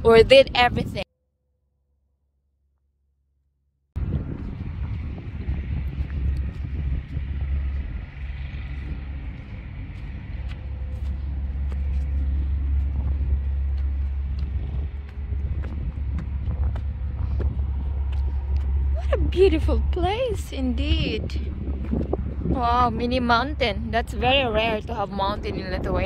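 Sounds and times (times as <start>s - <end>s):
wind buffeting microphone: 0.0s - 1.0s, 4.0s - 26.0s.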